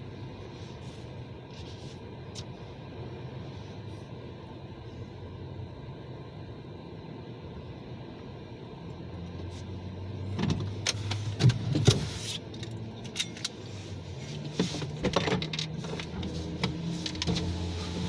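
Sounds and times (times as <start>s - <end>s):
car idling: 0.0s - 18.0s.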